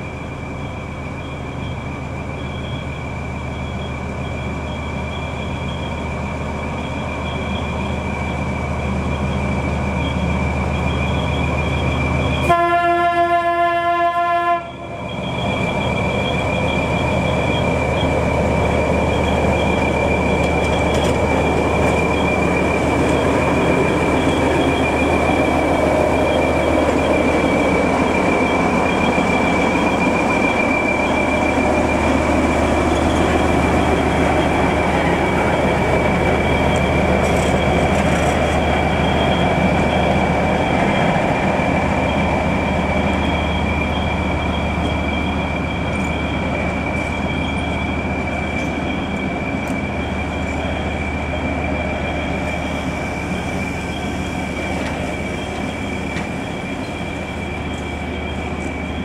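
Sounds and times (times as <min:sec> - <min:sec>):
diesel locomotive engine drone: 0:00.0 - 0:59.0.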